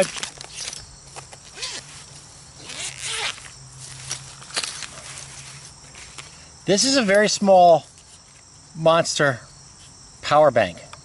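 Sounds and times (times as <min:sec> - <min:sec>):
zipper being pulled open: 0:01.5 - 0:02.0, 0:02.6 - 0:05.5.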